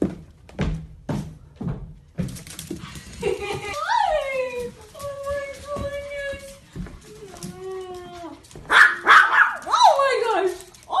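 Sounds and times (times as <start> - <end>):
dog yipping and barking: 8.7 - 9.9.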